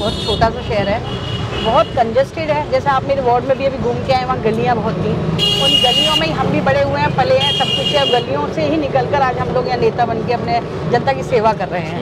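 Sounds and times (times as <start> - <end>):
vehicle horn honking: 5.4 - 6.4, 7.3 - 8.3.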